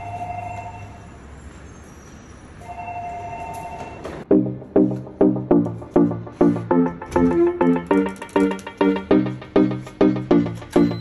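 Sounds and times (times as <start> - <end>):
electronic two-note tone: 4.3 - 11.0.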